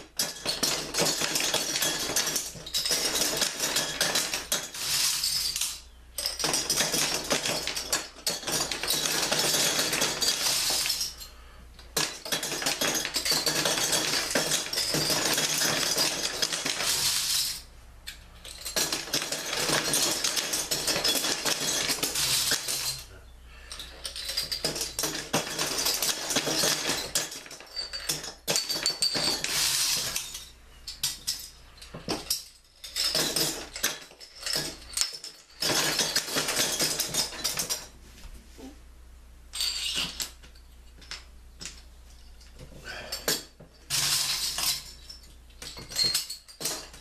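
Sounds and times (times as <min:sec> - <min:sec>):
metal bottle caps clattering: 0:00.0 - 0:37.9, 0:39.5 - 0:47.0.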